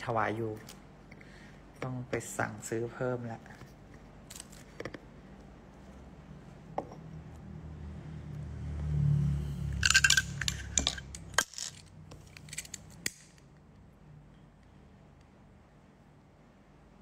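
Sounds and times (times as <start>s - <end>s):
small hard objects clinking: 9.8s - 12.8s.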